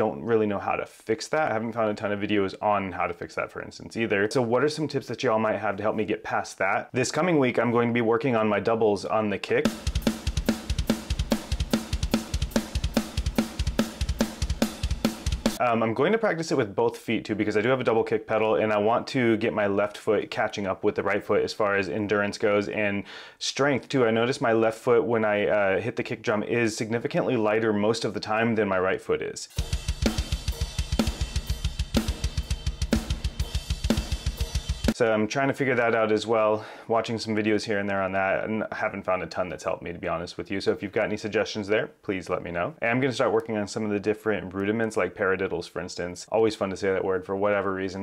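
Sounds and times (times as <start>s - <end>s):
cymbals: 9.7s - 15.6s, 29.5s - 35.0s
kick drum strokes: 9.7s - 15.6s, 29.6s - 35.0s
snare drum hits: 29.6s - 35.0s.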